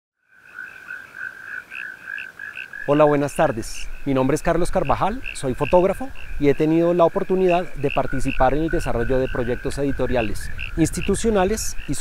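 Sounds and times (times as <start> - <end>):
frogs chirping chorus: 0.2 - 12.0.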